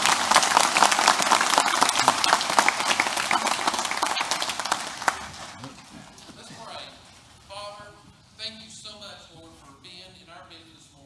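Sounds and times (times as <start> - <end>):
crowd applauding: 0.0 - 6.5.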